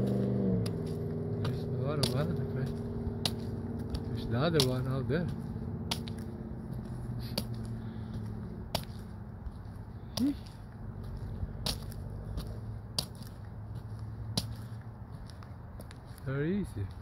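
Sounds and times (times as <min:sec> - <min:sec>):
truck engine idling: 0:00.0 - 0:16.6.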